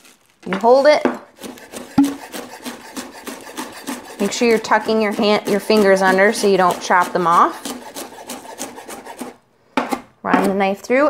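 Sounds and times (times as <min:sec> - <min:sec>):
knife chopping on wooden board: 0:01.1 - 0:10.6
knock on cutting board: 0:02.0 - 0:02.2.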